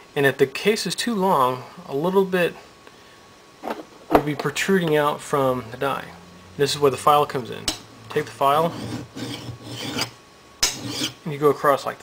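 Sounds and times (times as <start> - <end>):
hand file rasping on metal: 8.5 - 11.2.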